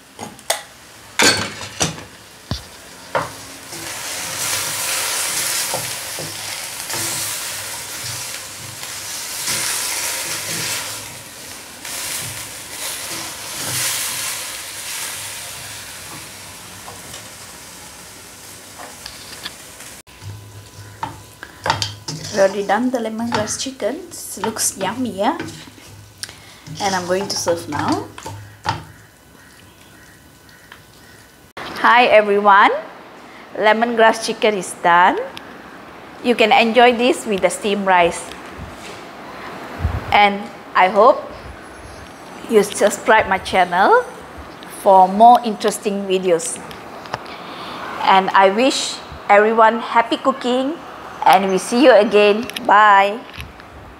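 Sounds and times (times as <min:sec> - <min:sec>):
food sizzling in a wok: 0:00.0 - 0:31.5
faint steady hiss: 0:00.0 - 0:53.9
wooden spatula scraping wok: 0:02.6 - 0:17.4, 0:18.8 - 0:31.2.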